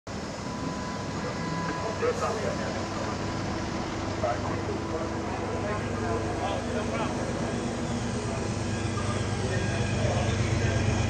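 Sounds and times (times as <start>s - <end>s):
diesel engines rumbling: 0.1s - 11.0s
faint high whine: 0.1s - 11.0s.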